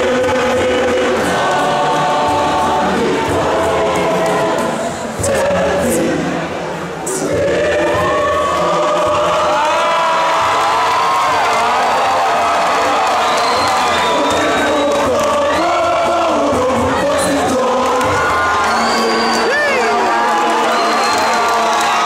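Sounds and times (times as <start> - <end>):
choir singing held chords: 0.0 - 22.0
audience whooping and cheering: 8.0 - 16.0, 16.8 - 22.0.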